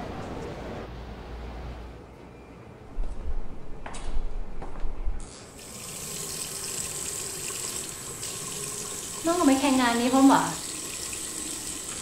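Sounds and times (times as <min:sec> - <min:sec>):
water running from sink tap: 0:05.6 - 0:12.0.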